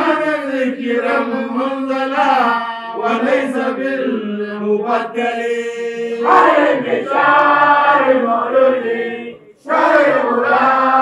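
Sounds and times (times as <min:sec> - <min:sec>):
men chanting: 0:00.0 - 0:11.0.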